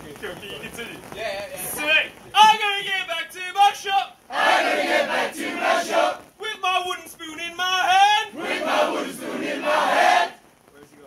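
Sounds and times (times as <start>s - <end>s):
group chanting in unison: 4.3s - 6.2s, 8.3s - 10.4s.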